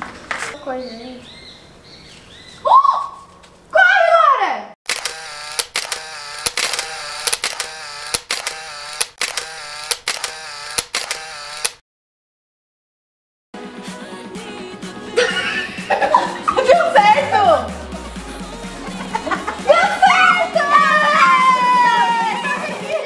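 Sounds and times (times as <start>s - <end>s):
clicks at edit cuts: 4.9s - 11.8s
chopped repeated vocal clip: 15.2s - 21.5s.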